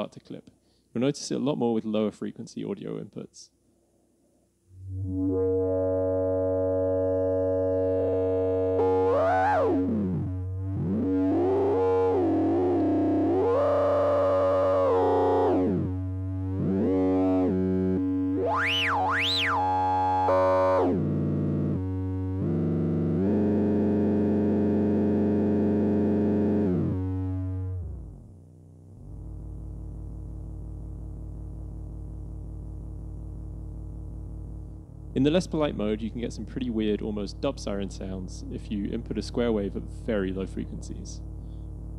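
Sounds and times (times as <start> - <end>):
low synthesizer buzz: 4.6 - 41.9
resonant synthesizer filter sweep: 4.7 - 39.5.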